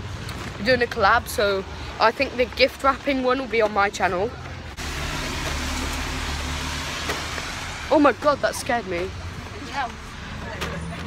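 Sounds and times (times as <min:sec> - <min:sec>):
loud rushing rumble: 0:04.6 - 0:11.0.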